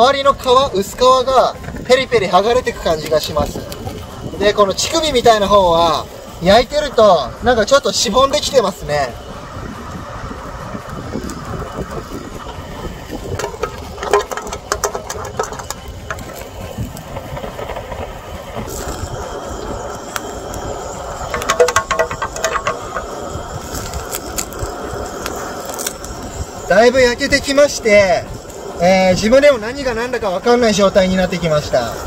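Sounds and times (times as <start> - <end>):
food searing in metal pot: 0.0 - 32.0
gas torch flame roar: 0.0 - 32.0
small clicks and crackles: 0.3 - 4.2, 10.7 - 28.8.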